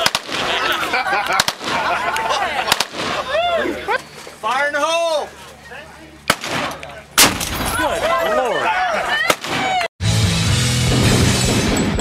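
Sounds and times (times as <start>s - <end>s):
people's voices: 0.0s - 9.9s
loud gunshot: 6.3s - 7.8s.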